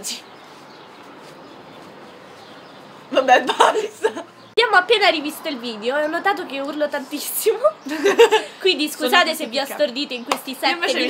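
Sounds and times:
faint outdoor background hiss: 0:00.0 - 0:11.0.

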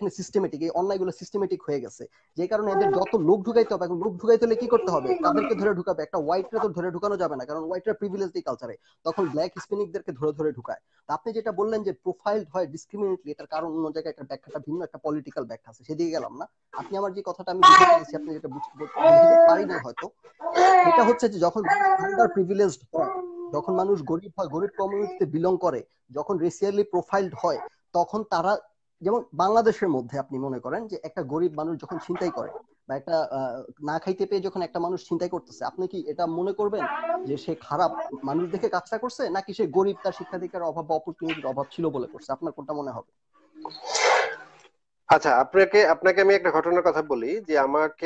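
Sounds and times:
man talking over video call: 0:00.0 - 0:48.0.

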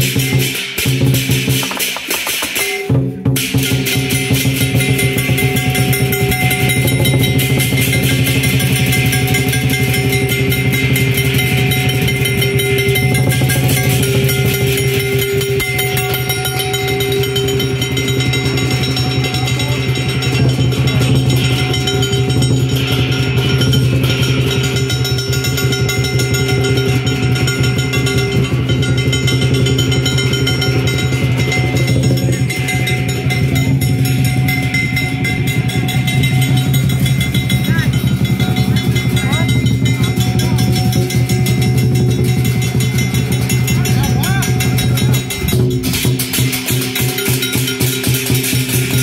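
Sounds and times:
crashing hand cymbals: 0:00.0 - 0:49.0
large drum beaten fast: 0:00.0 - 0:49.0
ringing gong: 0:02.4 - 0:49.0.

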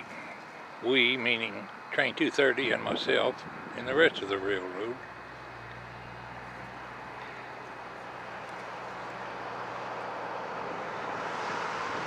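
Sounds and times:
truck engine hum: 0:00.0 - 0:12.0.

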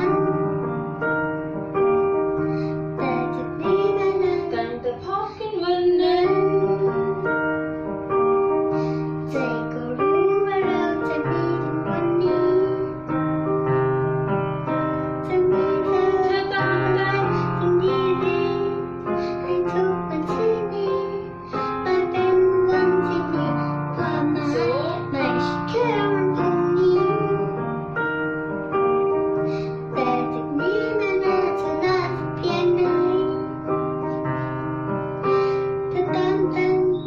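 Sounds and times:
girl singing: 0:00.0 - 0:37.0
piano chords: 0:00.0 - 0:37.0.

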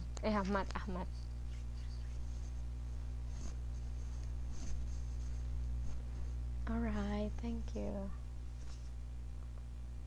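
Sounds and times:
low hum with faint hiss: 0:00.0 - 0:10.0
faint soft rustle: 0:01.4 - 0:06.5, 0:08.5 - 0:09.0.

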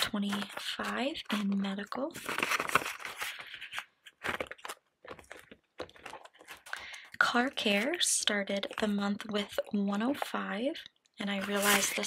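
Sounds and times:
plastic envelope clicking and crinkling: 0:02.2 - 0:07.0.

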